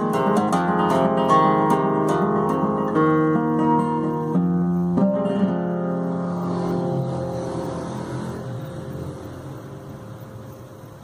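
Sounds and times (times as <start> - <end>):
classical guitar chord ringing: 0.0 - 10.8.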